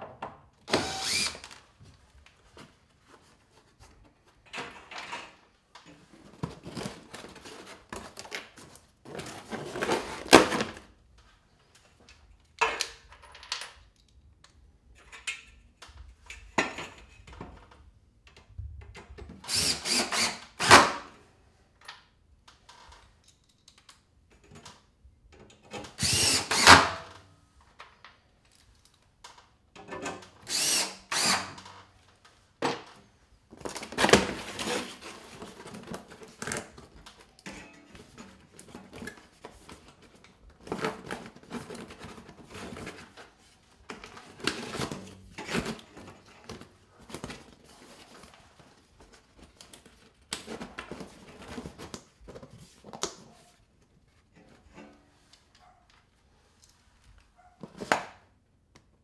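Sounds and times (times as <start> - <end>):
cordless drill driving screws: 0.7 - 1.6, 19.4 - 21.0, 26.0 - 27.0, 30.4 - 31.6.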